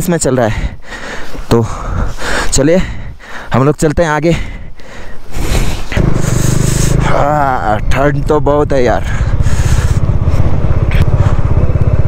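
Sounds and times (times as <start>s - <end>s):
wind and tyre noise: 0.0s - 12.0s
motorcycle engine running: 5.6s - 12.0s.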